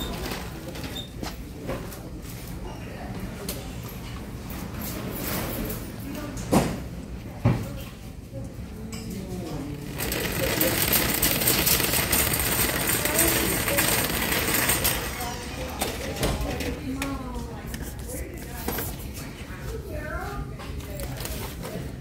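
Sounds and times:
metal shopping cart rattling: 0:09.8 - 0:16.8.

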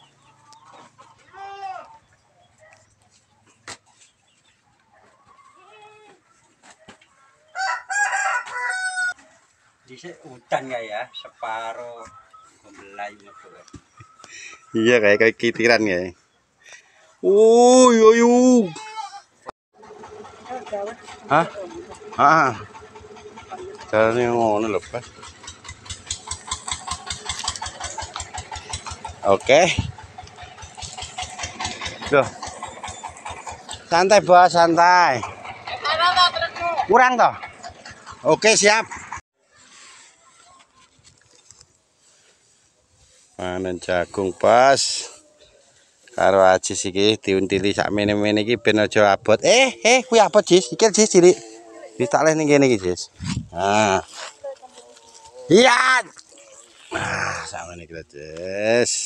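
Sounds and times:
chicken calls: 0:00.0 - 0:17.3, 0:18.6 - 0:57.7
rooster crowing: 0:07.5 - 0:09.3
engine idling with low chug: 0:19.8 - 0:39.2.

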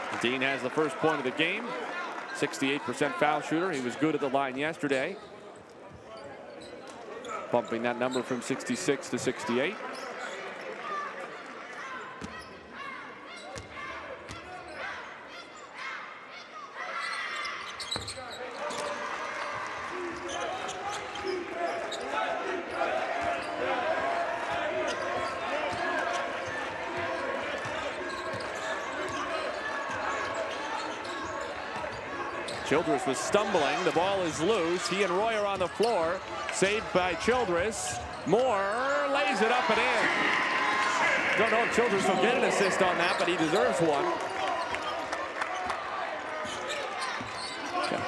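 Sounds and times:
players and crowd voices: 0:00.0 - 0:48.0.

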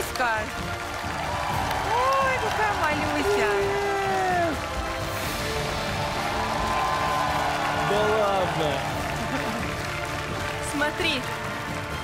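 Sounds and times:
background music: 0:00.0 - 0:12.0
light applause: 0:00.0 - 0:12.0.

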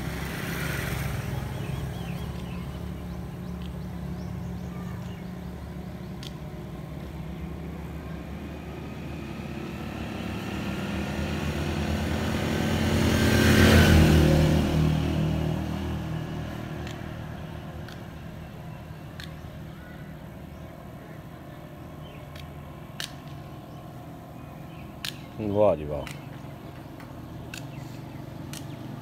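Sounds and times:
vehicle engine passing: 0:00.0 - 0:19.2.

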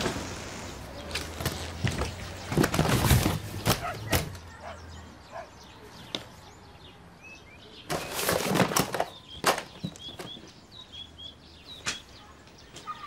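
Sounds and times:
small birds chirping: 0:00.0 - 0:13.0
rustling and knocking in suitcase: 0:01.1 - 0:04.4.

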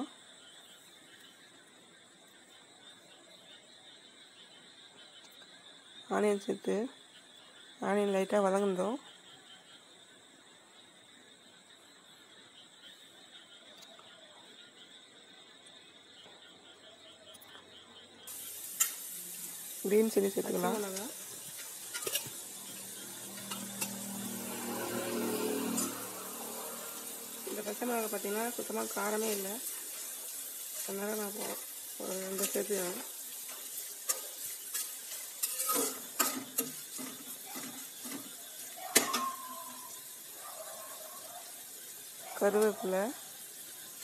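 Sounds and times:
onions sizzling in hot oil: 0:18.3 - 0:44.0
ladle scraping pan: 0:20.7 - 0:27.6, 0:29.8 - 0:39.4.

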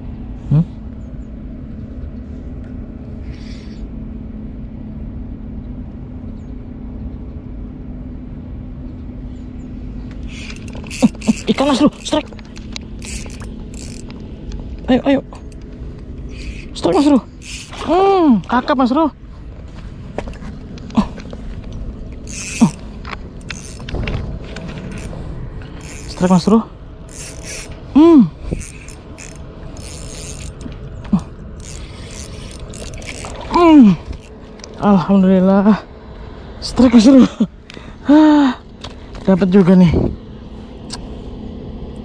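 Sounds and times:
small clicks: 0:10.1 - 0:14.6, 0:22.2 - 0:26.4, 0:27.1 - 0:27.8, 0:28.6 - 0:30.8, 0:31.6 - 0:33.5
fishing reel cranking: 0:10.2 - 0:14.2, 0:16.3 - 0:18.0, 0:22.2 - 0:24.1, 0:24.8 - 0:30.8, 0:31.6 - 0:34.7.

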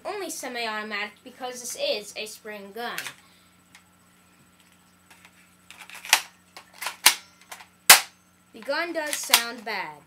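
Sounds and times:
airsoft pistol plastic snaps: 0:05.7 - 0:08.2, 0:09.1 - 0:09.6.

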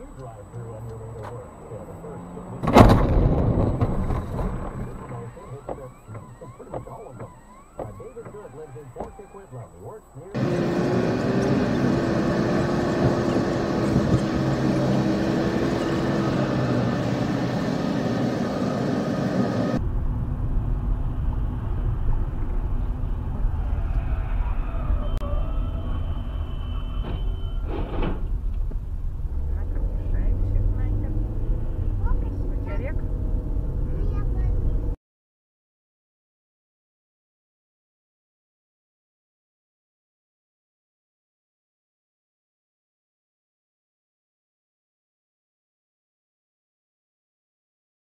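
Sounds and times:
car road and engine noise: 0:00.0 - 0:35.0.

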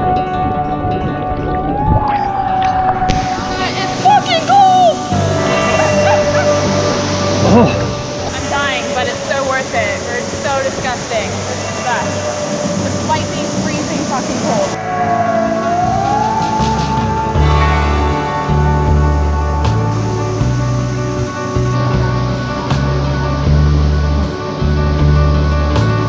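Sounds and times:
background music with bass: 0:00.0 - 0:26.0
water splashing: 0:01.4 - 0:14.9
people's voices: 0:01.7 - 0:14.9.

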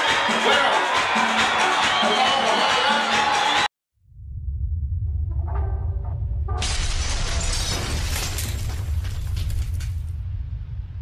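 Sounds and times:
deep rumble: 0:04.0 - 0:11.0
shattering crash: 0:06.6 - 0:10.2.

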